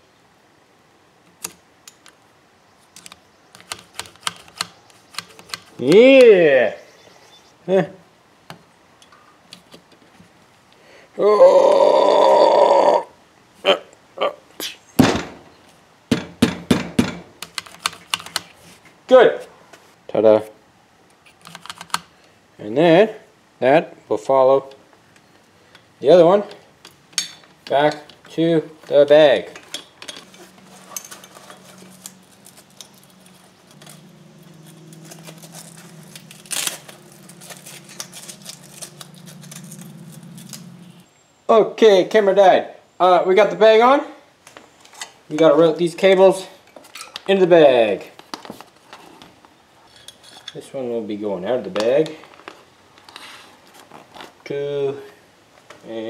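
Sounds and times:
bag handling clicks and rustles: 0:27.2 - 0:41.0, 0:51.8 - 0:54.5
low hum: 0:30.1 - 0:41.1.

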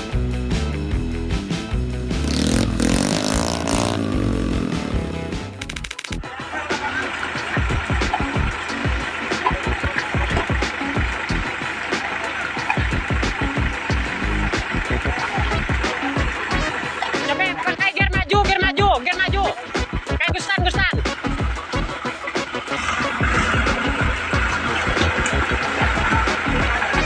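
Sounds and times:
background music: 0:00.0 - 0:27.0
motor vehicle engines: 0:01.8 - 0:17.7, 0:19.5 - 0:20.2, 0:21.0 - 0:27.0.

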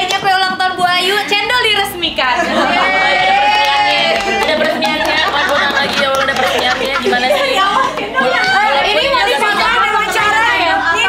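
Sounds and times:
women chattering: 0:04.1 - 0:11.0.

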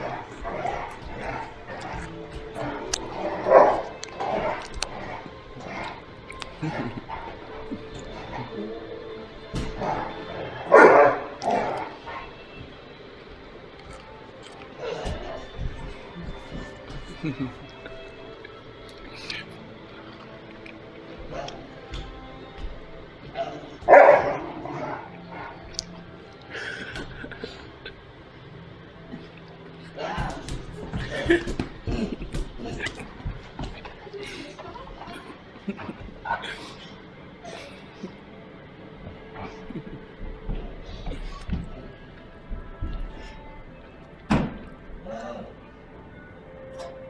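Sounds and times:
background music: 0:00.0 - 0:47.0
dog barking: 0:03.3 - 0:04.7, 0:10.7 - 0:12.0, 0:23.4 - 0:25.0.

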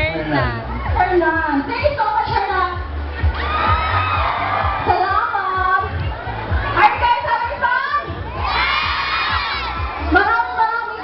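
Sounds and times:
crowd screaming and cheering: 0:00.2 - 0:11.0.

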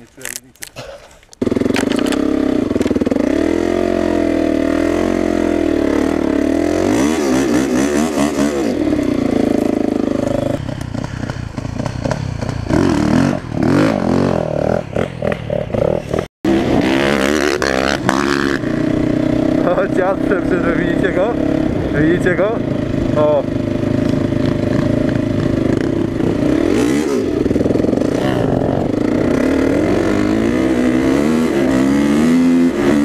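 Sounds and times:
quad engine running steadily: 0:01.3 - 0:33.0
dirt bike engine revving: 0:01.4 - 0:33.0.

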